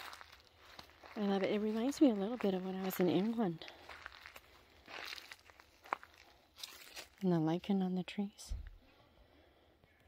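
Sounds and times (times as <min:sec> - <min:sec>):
rustling on forest floor: 0:00.0 - 0:07.6.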